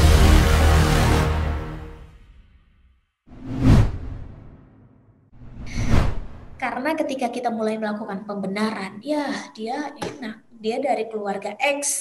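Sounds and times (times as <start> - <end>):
whoosh with heavy low end: 3.3 - 6.6.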